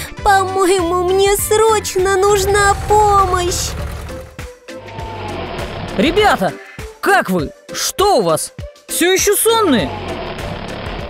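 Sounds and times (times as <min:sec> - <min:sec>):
cartoon background music: 0:00.0 - 0:11.0
low hum: 0:02.1 - 0:04.4
steady rushing noise: 0:02.2 - 0:04.4.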